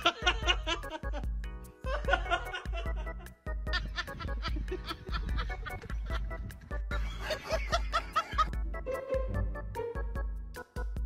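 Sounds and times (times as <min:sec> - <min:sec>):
person laughing: 0:00.0 - 0:09.0
background music with steady beat: 0:00.0 - 0:11.0.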